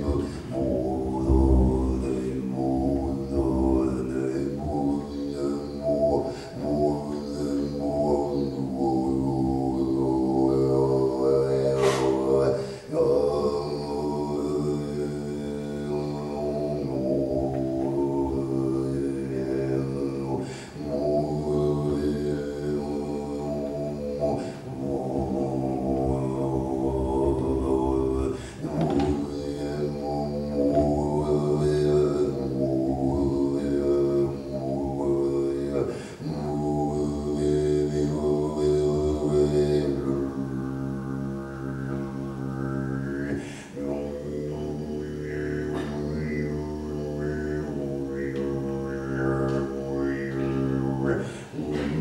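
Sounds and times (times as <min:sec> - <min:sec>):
man chanting a low drone: 0:00.0 - 0:52.0.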